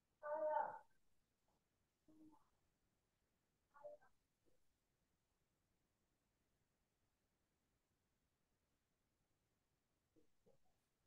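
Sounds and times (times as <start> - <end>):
faint brief voice: 0.2 - 0.8.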